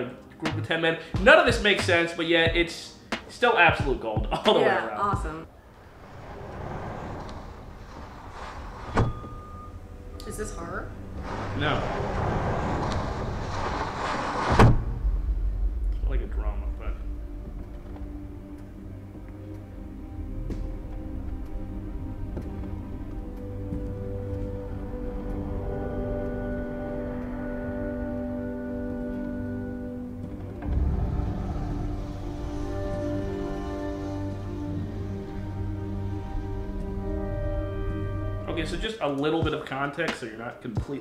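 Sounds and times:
film score held chords: 0.0 - 41.0
low rumble: 5.4 - 38.9
steady rushing noise: 5.5 - 9.8, 10.8 - 38.8.

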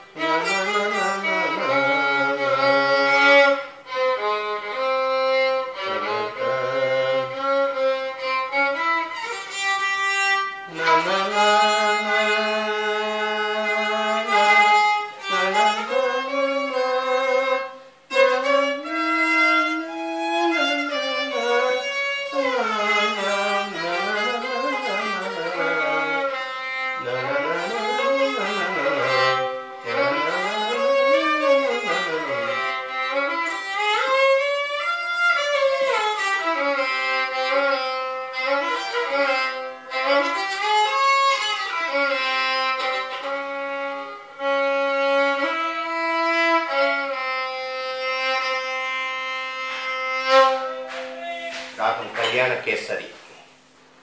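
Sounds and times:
solo violin melody: 0.0 - 52.8.

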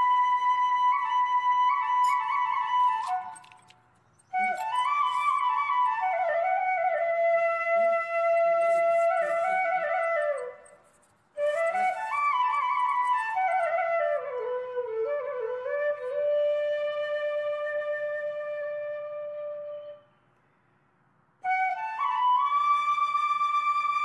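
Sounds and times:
solo flute-like melody: 0.0 - 20.2, 21.4 - 24.0.

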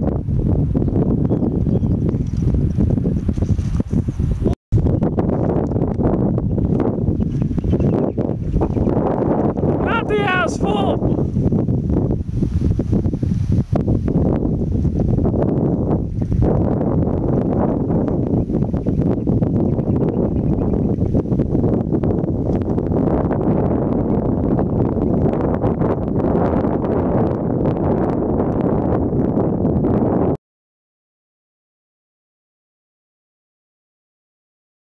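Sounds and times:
wind buffeting microphone: 0.0 - 30.4.

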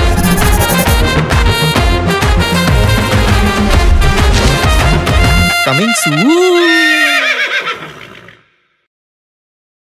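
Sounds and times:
horse whinnying: 6.4 - 8.5.

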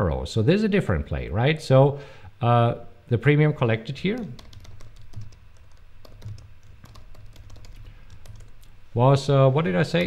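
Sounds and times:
computer keyboard typing: 4.1 - 8.7.

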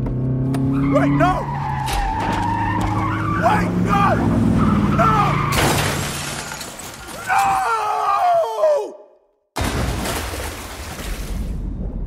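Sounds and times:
tires squealing: 0.6 - 6.0
man shouting: 3.4 - 4.3, 4.9 - 5.4, 7.2 - 9.2.

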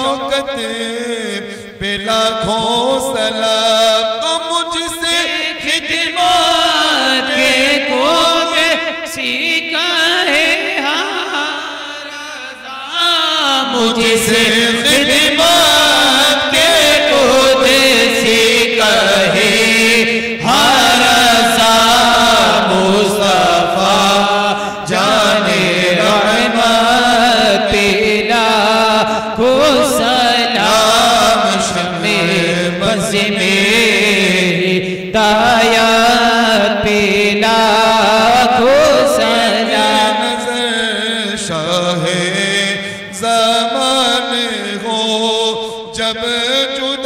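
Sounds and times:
men chanting through microphones: 0.0 - 47.0.

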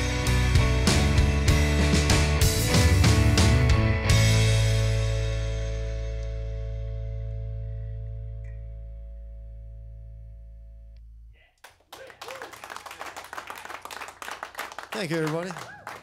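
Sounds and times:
applause: 11.6 - 16.0
voices: 14.9 - 15.9.

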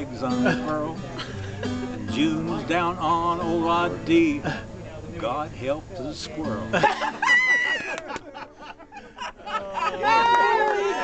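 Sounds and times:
acoustic guitar chord ringing: 0.0 - 7.3
woman laughing loudly: 6.7 - 10.5.

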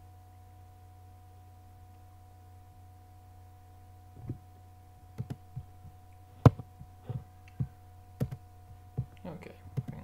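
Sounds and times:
low electrical hum: 0.0 - 10.0
computer mouse clicks: 5.2 - 5.4, 7.5 - 8.4, 9.8 - 10.0.

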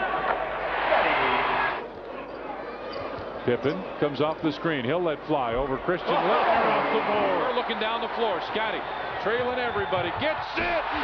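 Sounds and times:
crowd cheering loudly: 0.0 - 1.8, 5.8 - 11.0.

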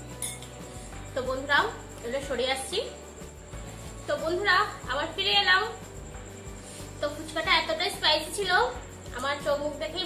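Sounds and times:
metal spoon clinking glass bowl: 0.0 - 0.6.

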